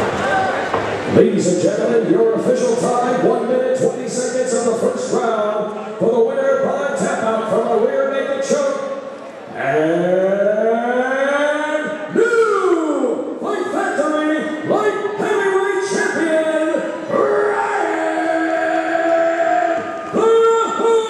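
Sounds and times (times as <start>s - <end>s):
man announcing over loudspeaker: 0.2s - 21.0s.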